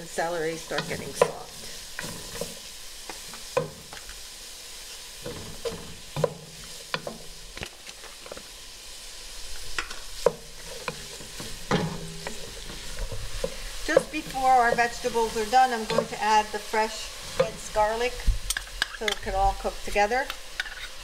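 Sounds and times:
vegetables sizzling in butter: 0.0s - 21.0s
wooden spoon scraping a pot: 0.6s - 3.6s, 9.7s - 19.4s, 20.5s - 21.0s.

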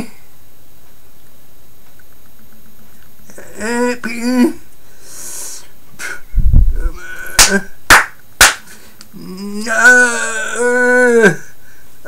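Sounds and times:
sharp hand claps: 7.4s - 8.7s.

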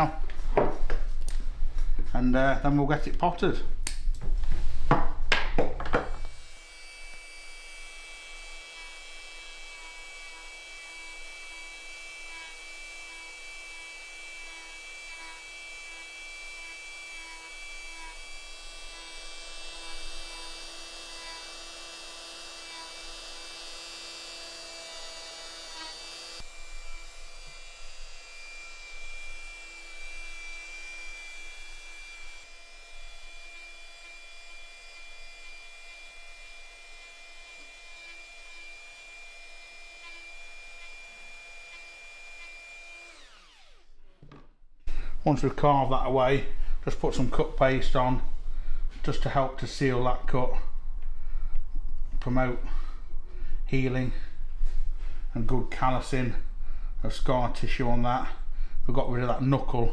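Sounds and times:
rotary tool grinding wood: 6.1s - 44.3s.

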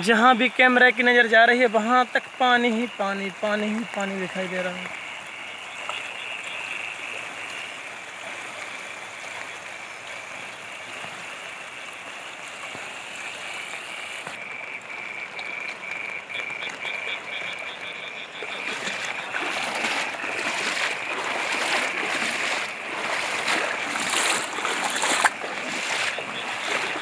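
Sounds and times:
flowing floodwater: 0.0s - 27.0s
frogs calling: 0.0s - 27.0s.

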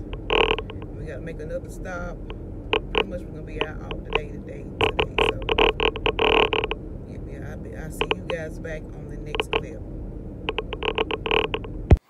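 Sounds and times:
air buffeting microphone: 0.0s - 12.0s.

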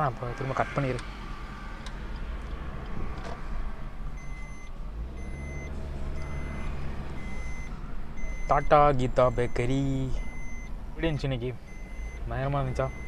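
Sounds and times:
car cabin road noise: 0.0s - 13.0s
electronic warning beeps: 4.2s - 13.0s.

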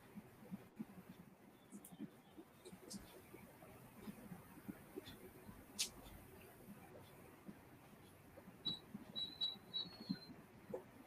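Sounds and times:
short high-pitched beeps: 8.6s - 10.4s.

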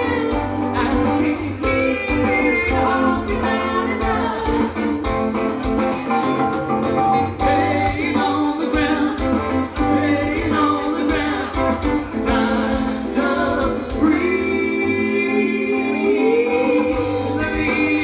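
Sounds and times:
live band with singing: 0.0s - 18.0s.

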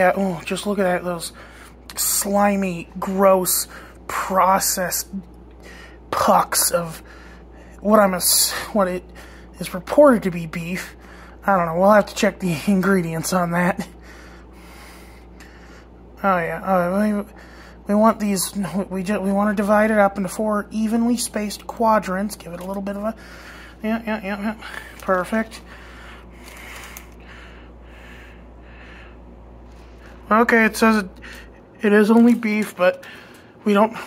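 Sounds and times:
low steady hum: 0.0s - 34.0s
soft breathing: 5.6s - 6.1s, 13.9s - 16.1s, 17.3s - 17.9s, 23.2s - 23.8s, 24.6s - 30.3s, 31.1s - 31.8s.

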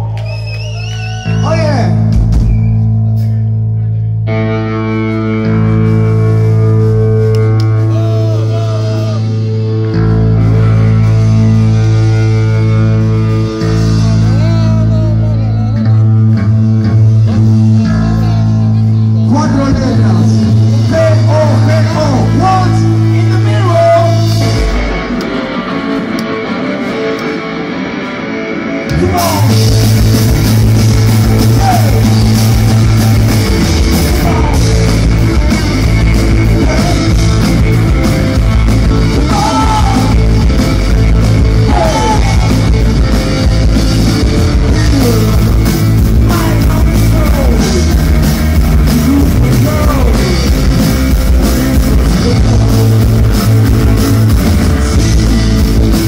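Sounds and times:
live rock band playing: 0.0s - 56.0s
droning electric guitar chords: 1.2s - 56.0s.

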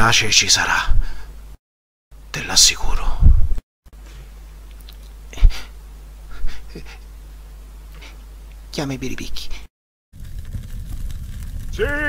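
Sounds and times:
bonfire roaring and crackling: 10.2s - 12.0s
man shouting: 11.7s - 12.0s.

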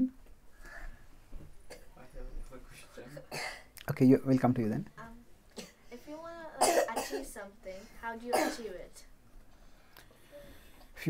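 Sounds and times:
loud cough: 3.3s - 3.7s, 6.6s - 7.2s, 8.3s - 8.6s.

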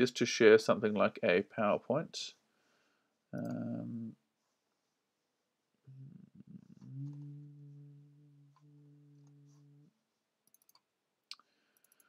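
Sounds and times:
man humming in hesitation: 3.4s - 4.2s, 5.9s - 9.9s
computer mouse clicks: 10.4s - 10.9s, 11.8s - 12.0s.

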